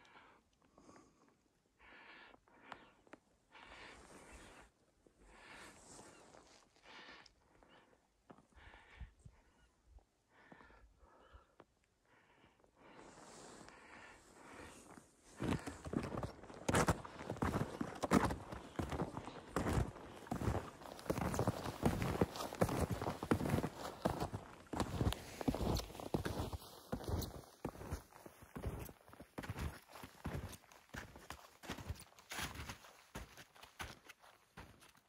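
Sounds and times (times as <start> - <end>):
snowshoe footsteps in snow: 14.5 - 35.0.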